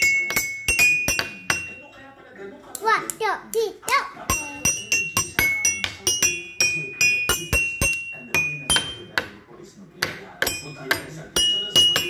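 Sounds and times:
toy xylophone notes: 0.0s - 2.0s, 4.3s - 9.3s, 10.4s - 12.0s.

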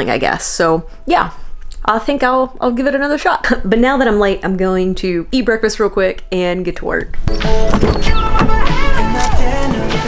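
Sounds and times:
background music with a beat: 7.3s - 10.0s.

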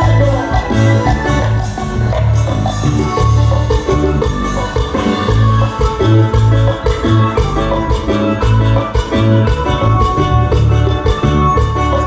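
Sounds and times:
bass line: 0.0s - 12.0s
live dance band music: 0.0s - 12.0s.

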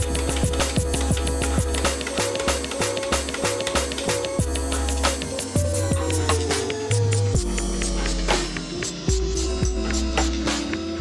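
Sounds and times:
sliced electronic music: 0.0s - 11.0s.

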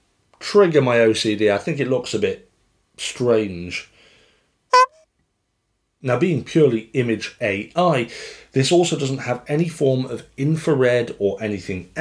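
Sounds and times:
brief buzzy tone: 4.7s - 5.0s
faint lower tone: 4.8s - 5.0s.

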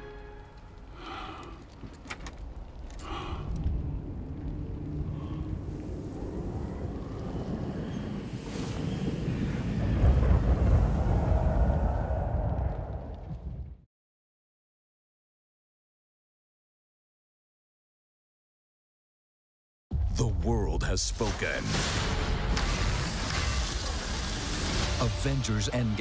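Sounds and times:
low wind-like rumble: 0.7s - 13.8s.

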